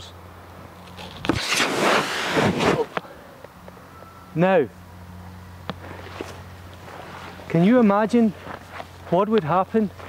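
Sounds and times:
air rushing out: 1.3 - 3.0.

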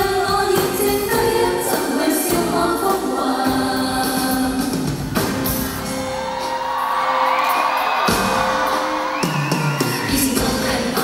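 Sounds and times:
crowd whooping and cheering: 5.7 - 11.0.

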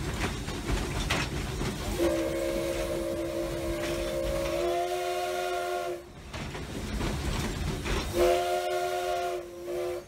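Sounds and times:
moving train rumble: 0.0 - 10.0
steam locomotive chime whistle: 1.9 - 6.1, 8.1 - 10.0.

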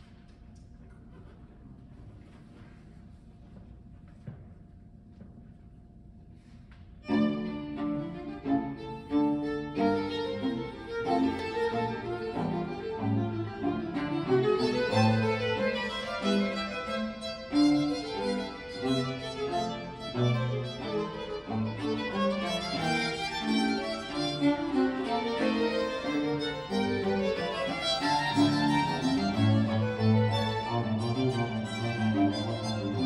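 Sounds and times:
baroque string ensemble playing: 7.0 - 33.0.

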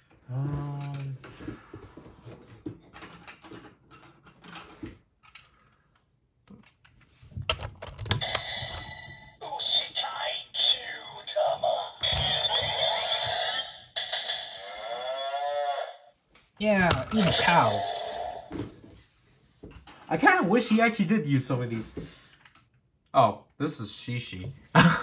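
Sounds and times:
toy electronic sound effects: 8.2 - 16.1, 16.9 - 18.5
toy music: 8.2 - 16.1, 17.0 - 18.5
electronic voice callout: 9.4 - 16.0, 16.6 - 18.6.

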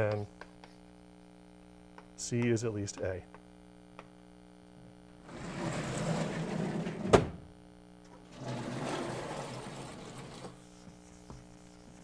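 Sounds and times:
mains hum: 0.0 - 12.0.

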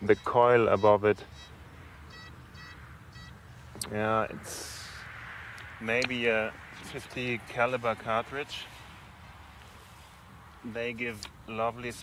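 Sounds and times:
metal detector beeps: 0.0 - 3.4.

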